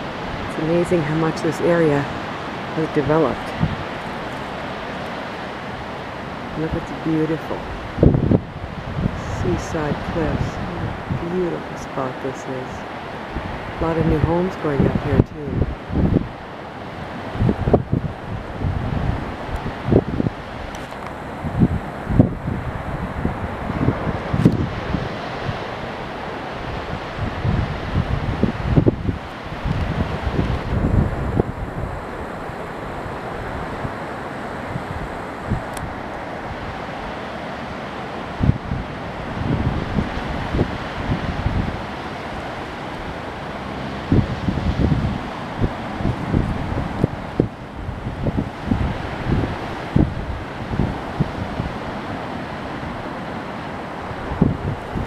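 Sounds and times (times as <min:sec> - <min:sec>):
surf breaking on beach: 0:00.0 - 0:55.0
wind blowing on microphone: 0:00.0 - 0:55.0.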